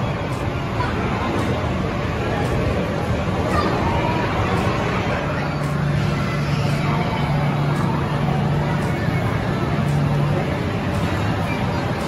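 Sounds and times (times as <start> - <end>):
arcade and bowling din: 0.0 - 12.0
constant low hum: 0.0 - 12.0.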